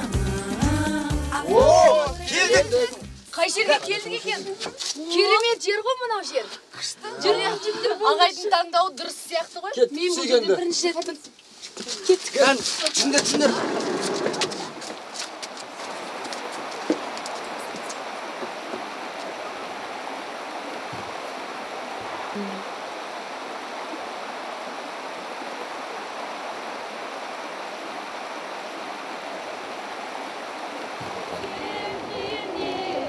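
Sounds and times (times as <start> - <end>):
stream rushing: 12.3 - 33.0.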